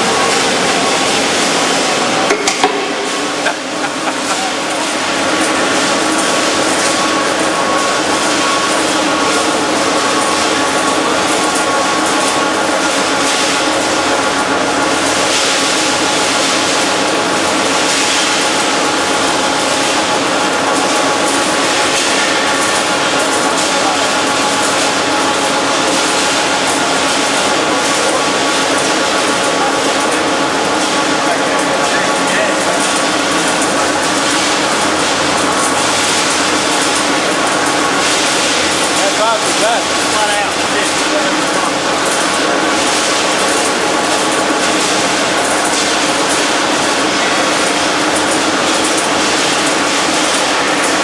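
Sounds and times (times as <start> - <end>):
wire coiling machine running: 0.0 - 51.0.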